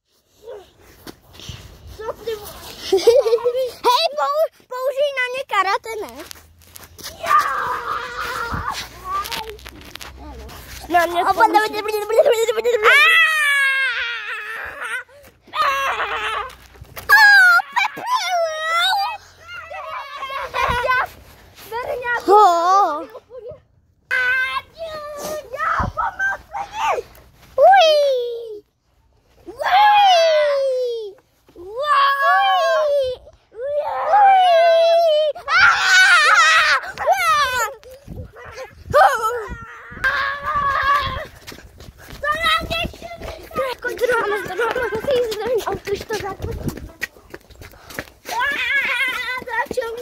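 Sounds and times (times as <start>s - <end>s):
children crying out: 7.1s - 9.6s, 12.8s - 21.2s, 31.7s - 41.5s, 48.2s - 49.7s
boy wailing: 7.2s - 9.6s, 12.1s - 21.0s, 29.5s - 41.4s.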